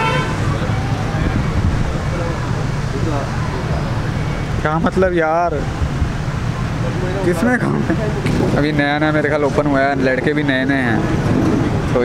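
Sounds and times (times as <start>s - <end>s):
low background rumble: 0.0s - 9.8s.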